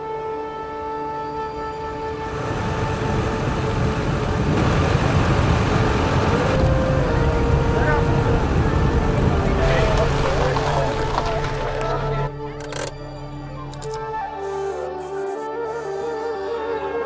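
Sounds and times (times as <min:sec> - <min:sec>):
street ambience: 0:00.0 - 0:17.0
van engine running: 0:02.3 - 0:12.6.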